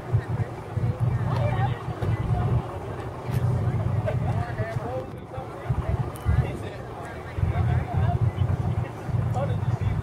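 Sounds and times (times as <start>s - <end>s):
faint voices: 0.0s - 10.0s
pickup truck engine rumbling: 0.0s - 10.0s.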